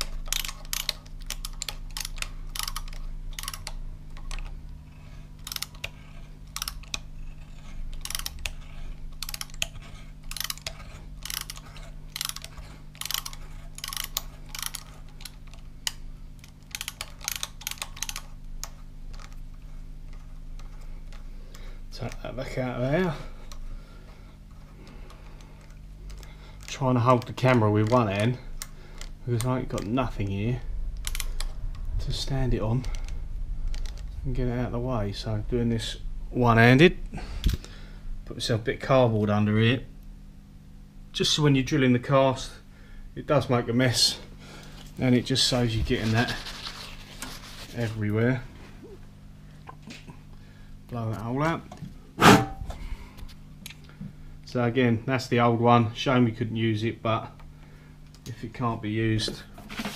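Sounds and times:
faint steady hum: 0.0s - 59.9s
tap wrench ratchet clicks: 0.1s - 4.5s, 5.4s - 5.9s, 6.5s - 7.0s, 8.0s - 8.6s, 9.2s - 16.0s, 16.7s - 18.2s
air puff: 52.2s - 53.1s.

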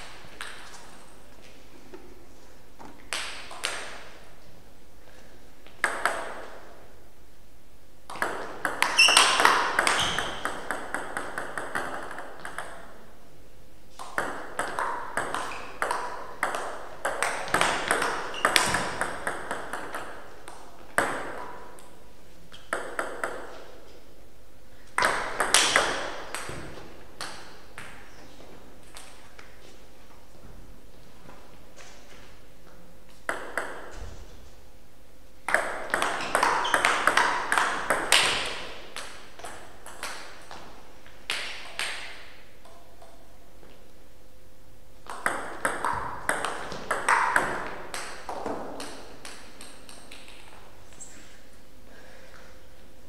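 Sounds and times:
ball bouncing: 5.7s - 6.7s, 8.1s - 13.0s, 14.0s - 21.9s, 22.5s - 23.9s, 24.9s - 29.2s, 31.8s - 34.4s, 35.4s - 43.8s, 45.0s - 51.1s
table tennis ball clicking: 8.1s - 12.9s, 22.6s - 23.5s, 33.3s - 33.9s, 45.1s - 50.5s.

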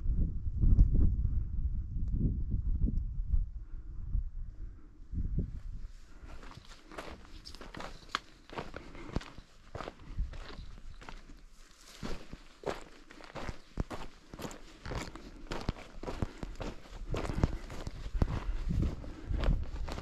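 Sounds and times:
footsteps crunching on trail: 6.2s - 20.0s.

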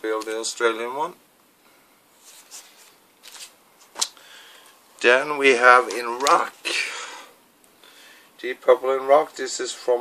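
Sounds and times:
plastic sleeves rustling: 2.1s - 6.8s.

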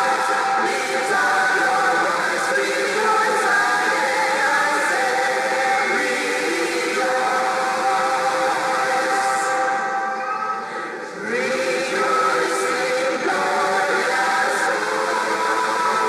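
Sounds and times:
church choir singing: 0.0s - 16.0s.

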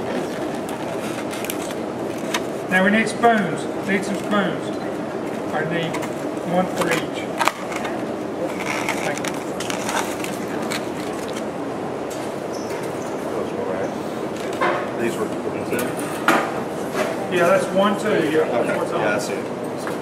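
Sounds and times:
murmur of many people talking: 0.0s - 20.0s.

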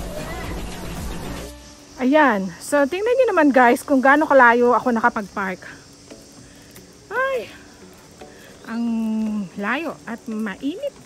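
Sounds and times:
high-pitched insect chorus: 0.0s - 11.0s
woman speaking: 2.0s - 5.8s, 8.6s - 11.0s.

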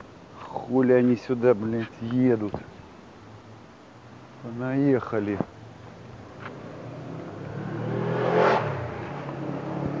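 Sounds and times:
car driving past: 6.2s - 10.0s.

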